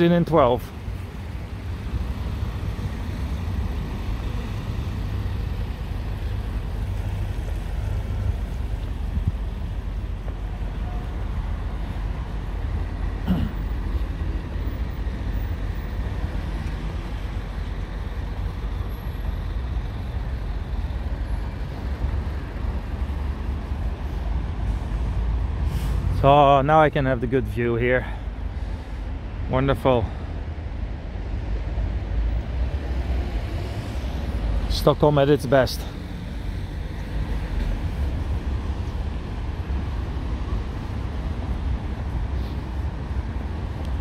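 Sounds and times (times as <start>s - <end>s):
road traffic rumble: 0.0s - 44.0s.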